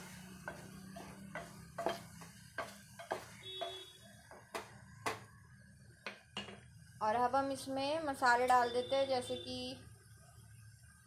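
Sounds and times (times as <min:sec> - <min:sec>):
spoon knocking on metal pot: 0:00.5 - 0:05.2.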